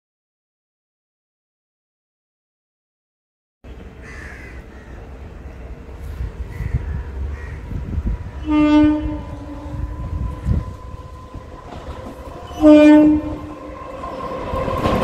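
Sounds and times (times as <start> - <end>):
train rumble: 3.7 - 15.0
train horn blast: 8.4 - 15.0.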